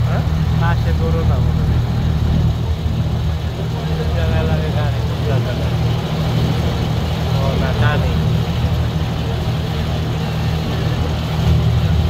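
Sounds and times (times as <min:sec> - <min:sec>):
boat engine droning: 0:00.0 - 0:12.0.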